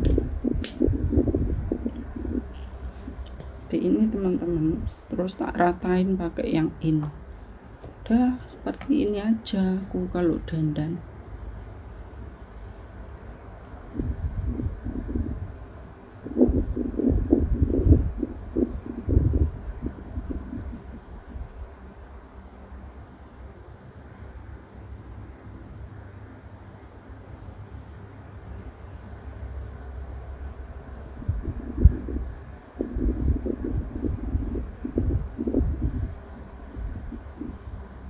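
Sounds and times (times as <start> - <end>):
electric fan air buffeting microphone: 0.0 - 38.0.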